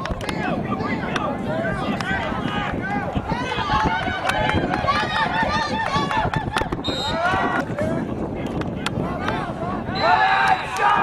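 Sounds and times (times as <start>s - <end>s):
spectators yelling and cheering: 0.1s - 11.0s.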